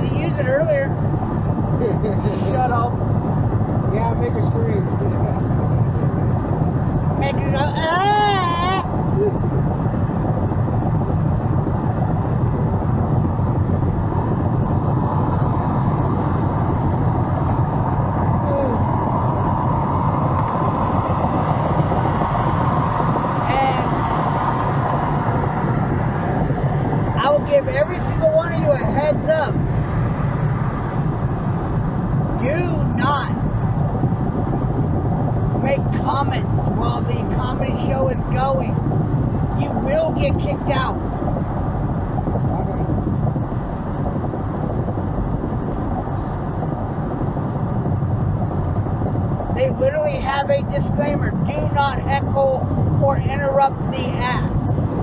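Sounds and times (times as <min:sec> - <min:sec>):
car road and engine noise: 0:00.0 - 0:55.0
person speaking: 0:01.8 - 0:02.9.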